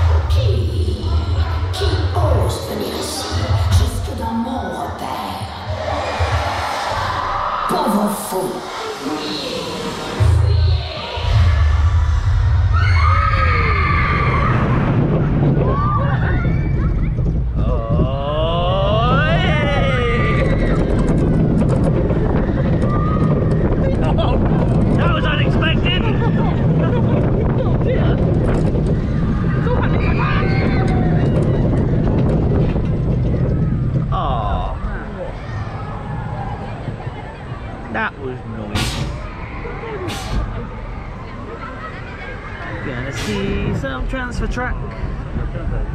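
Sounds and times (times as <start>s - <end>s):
roller coaster train rumbling on track: 0.0s - 45.9s
riders crying out and whooping: 12.7s - 17.2s, 17.8s - 27.4s, 28.2s - 33.9s.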